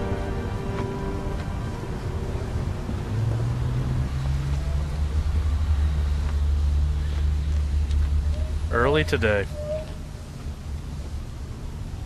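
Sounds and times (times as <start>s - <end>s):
low hum: 0.0s - 12.0s
steady low rumble: 0.0s - 12.0s.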